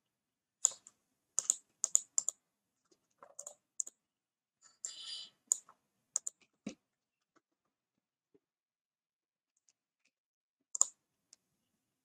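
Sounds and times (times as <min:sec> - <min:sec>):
keyboard typing: 0:00.6 - 0:02.4, 0:03.2 - 0:04.0, 0:04.8 - 0:06.5.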